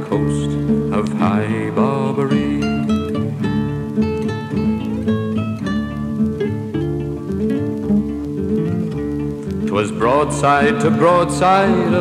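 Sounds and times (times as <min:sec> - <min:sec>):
acoustic guitar playing: 0:00.0 - 0:12.0.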